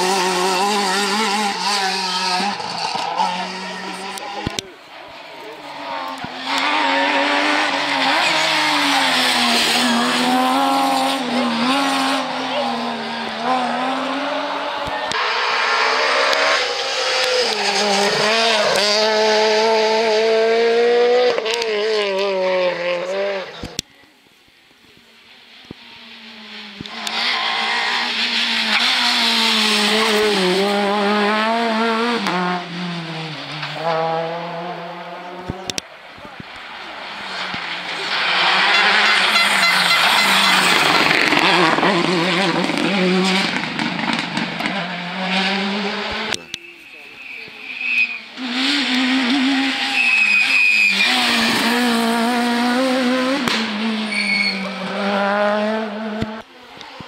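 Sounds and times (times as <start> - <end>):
rally cars passing at speed: 0.0 - 23.8, 25.2 - 57.0
tyres squealing: 46.4 - 48.4, 49.6 - 51.9, 54.1 - 54.6.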